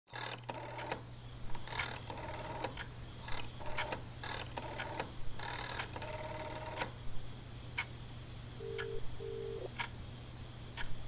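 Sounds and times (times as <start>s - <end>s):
rapid mechanical clicking: 0.1s - 7.0s
steady low hum: 0.6s - 11.0s.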